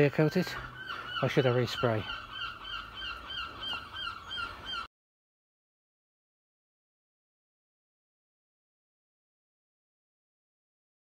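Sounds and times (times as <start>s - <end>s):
bird calling rapidly: 0.0s - 4.9s.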